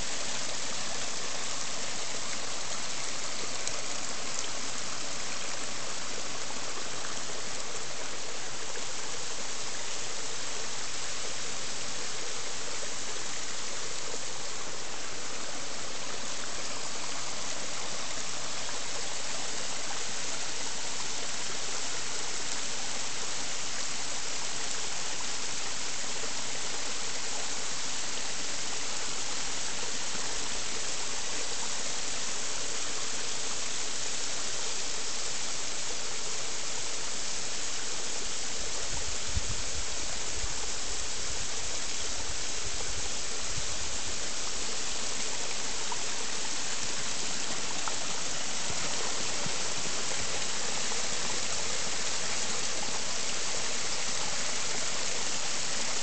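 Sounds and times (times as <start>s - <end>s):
water rushing over rocks: 0.0s - 56.0s.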